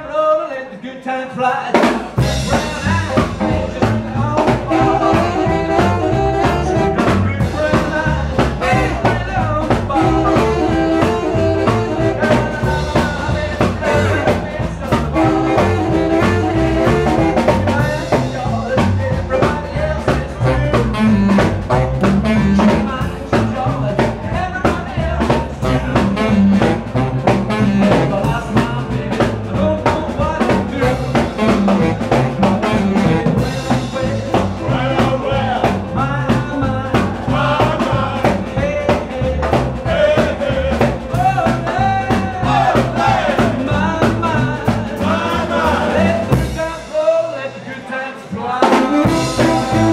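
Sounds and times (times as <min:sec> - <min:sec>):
drum kit: 0:01.6 - 0:49.9
upright double bass: 0:02.1 - 0:49.9
saxophone riffs: 0:02.4 - 0:07.7, 0:08.6 - 0:13.2, 0:13.8 - 0:18.6, 0:20.3 - 0:23.3, 0:25.6 - 0:28.6, 0:30.7 - 0:36.7, 0:48.7 - 0:49.9
electric guitar: 0:48.8 - 0:49.9.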